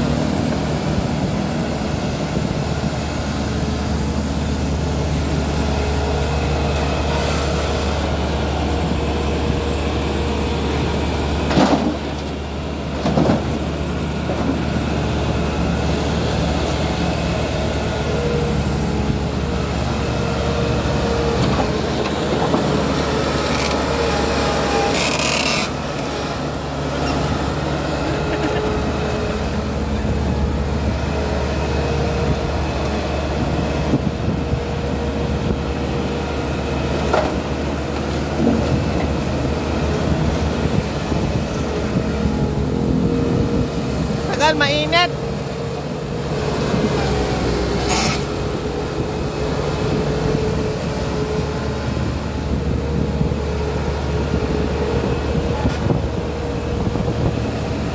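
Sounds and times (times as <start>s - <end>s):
diesel engine running: 0.0s - 57.9s.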